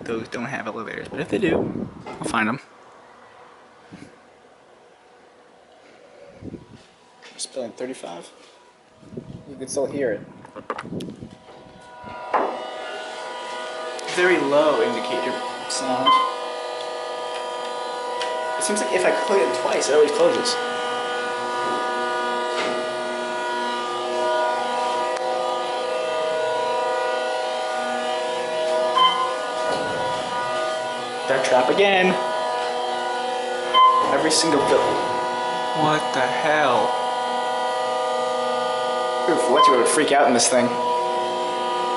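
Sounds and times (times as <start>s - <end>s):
elevator machinery humming: 11.4s - 41.9s
short high tone: 28.9s - 32.2s.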